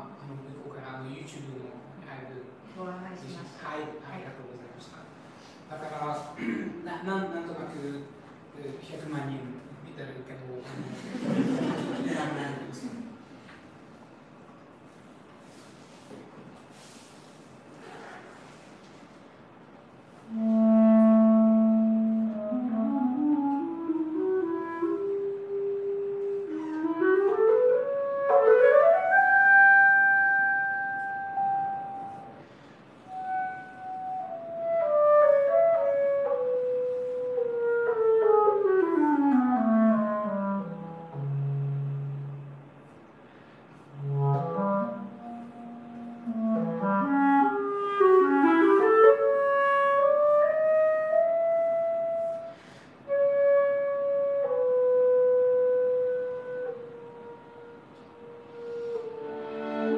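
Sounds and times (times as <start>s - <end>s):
clarinet long high note: 20.2s - 32.4s, 33.0s - 42.7s, 43.9s - 59.9s
strings playing together: 58.9s - 59.9s.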